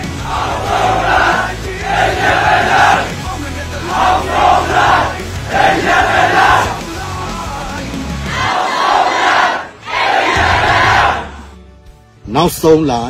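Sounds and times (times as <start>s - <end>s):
men chanting in unison: 0.0s - 11.4s
backing music with deep bass: 0.0s - 13.0s.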